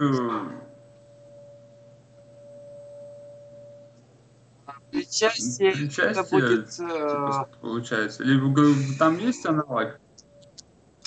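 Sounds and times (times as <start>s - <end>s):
person speaking: 0.0s - 0.6s, 4.7s - 10.0s
faint low hum: 0.0s - 11.0s
steady pure tone: 0.0s - 11.0s.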